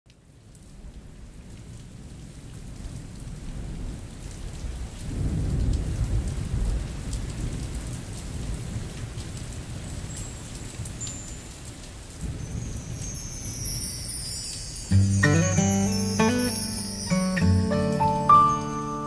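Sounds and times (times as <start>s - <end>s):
steady rain: 0.1s - 19.0s
deep roll of thunder: 4.7s - 9.0s.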